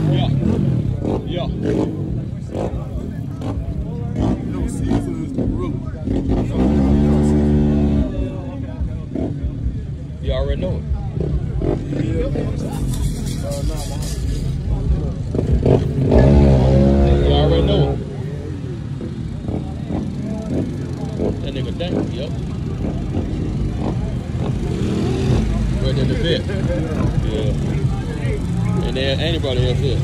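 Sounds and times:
car engine rumbling and revving: 0.0 - 30.0
people talking indistinctly: 0.0 - 30.0.

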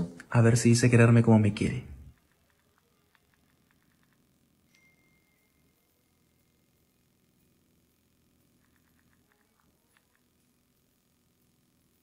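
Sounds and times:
faint ticks: 8.5 - 10.6.

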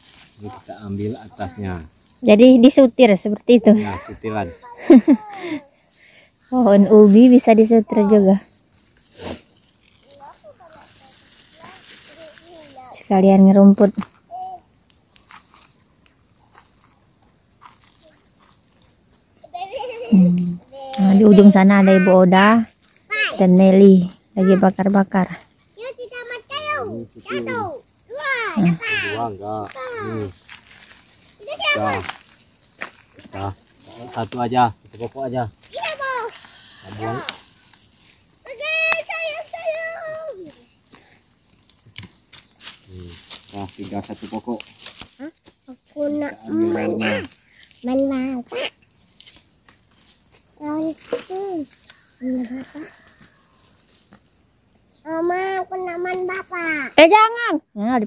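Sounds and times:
voices talking: 0.0 - 15.4, 17.8 - 41.3, 42.8 - 49.1, 50.4 - 54.2, 54.9 - 58.0
high-pitched insect drone: 0.0 - 58.0
child calling out: 10.1 - 13.0, 14.3 - 14.7, 19.5 - 22.5, 23.1 - 23.5, 25.8 - 30.3, 31.4 - 32.2, 35.7 - 37.4, 38.4 - 40.6, 46.0 - 48.8.

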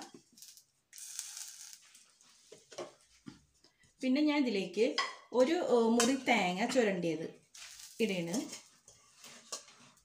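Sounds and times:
food sizzling in a hot pan: 0.0 - 2.0, 7.6 - 8.6
crackle: 0.3 - 2.1, 7.5 - 8.7.

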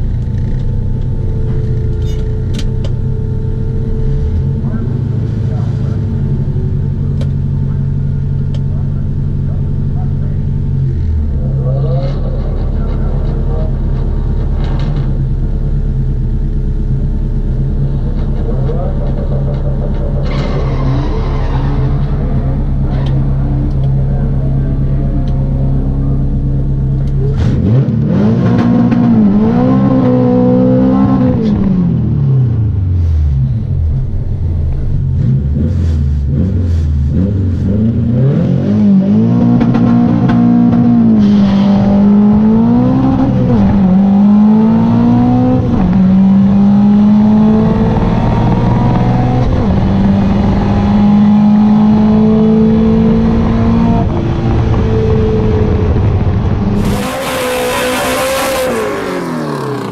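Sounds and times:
car engine idling and revving: 0.0 - 59.9.

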